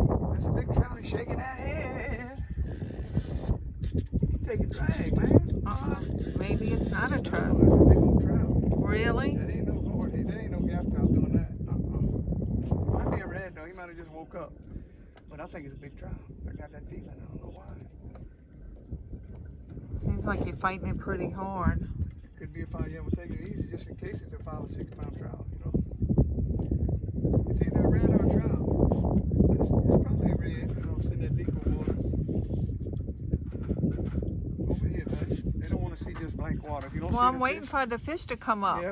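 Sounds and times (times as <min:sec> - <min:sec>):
wind rumble on microphone: 0:00.0 - 0:38.9
fishing reel drag buzzing: 0:02.6 - 0:04.1, 0:05.7 - 0:07.4.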